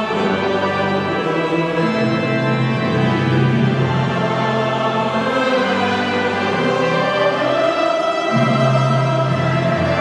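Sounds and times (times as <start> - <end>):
choir and orchestra sustained chords: 0.0 - 10.0.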